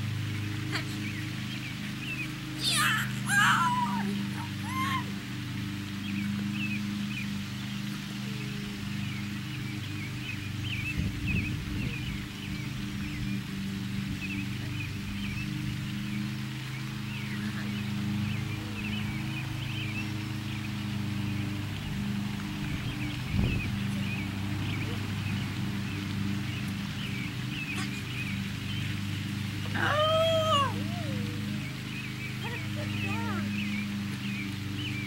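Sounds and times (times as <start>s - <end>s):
low mechanical hum: 0.0s - 35.0s
small birds chirping: 0.0s - 35.0s.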